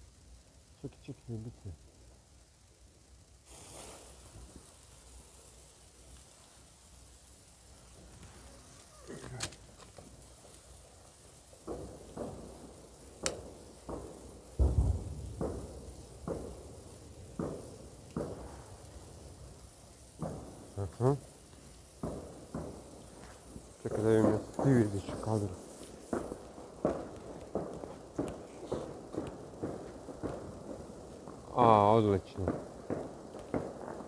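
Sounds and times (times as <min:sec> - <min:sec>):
flare hissing: 0:00.0 - 0:34.0
firecracker bangs: 0:08.0 - 0:34.0.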